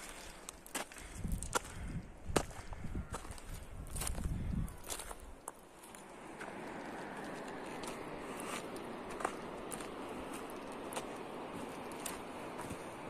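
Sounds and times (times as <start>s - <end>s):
footsteps on dry trail: 0.0s - 13.0s.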